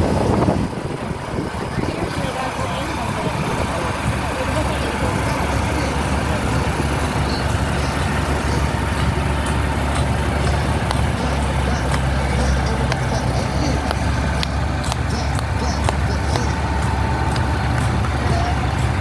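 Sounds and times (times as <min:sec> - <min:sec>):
trucks driving past: 0:00.0 - 0:19.0.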